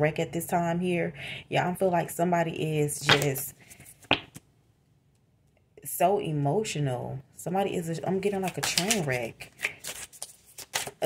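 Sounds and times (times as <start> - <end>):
cards snapping while shuffled: 8.4 - 11.0.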